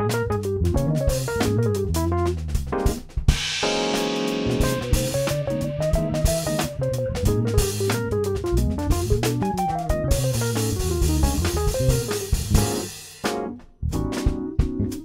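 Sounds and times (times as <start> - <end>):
electric bass jazz solo: 0.0 - 3.7, 4.3 - 15.0
drum kit with cymbals: 0.0 - 15.0.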